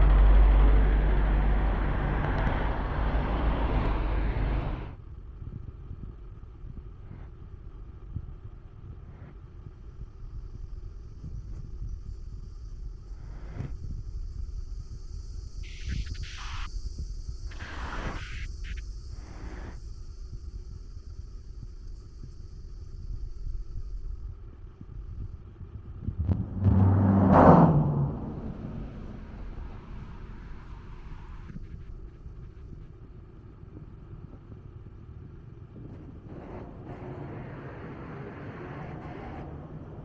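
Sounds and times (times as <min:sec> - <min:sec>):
cars passing: 0:00.0 - 0:04.9, 0:26.2 - 0:31.5
vehicle engine passing close: 0:00.0 - 0:05.0, 0:26.1 - 0:31.5
traffic rumble: 0:00.0 - 0:08.0, 0:25.4 - 0:40.0.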